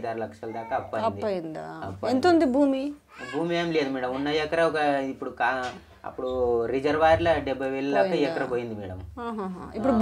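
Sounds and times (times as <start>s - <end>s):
people talking: 9.2s - 10.0s.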